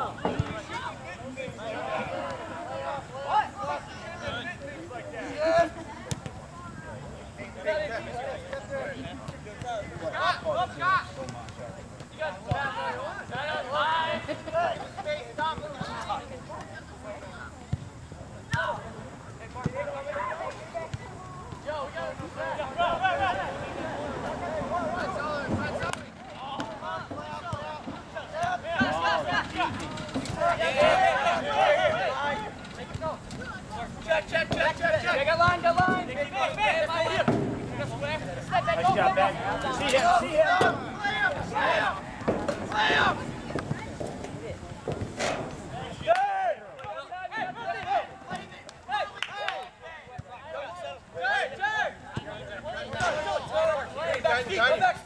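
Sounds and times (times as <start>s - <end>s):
players calling out: 0.0s - 55.0s.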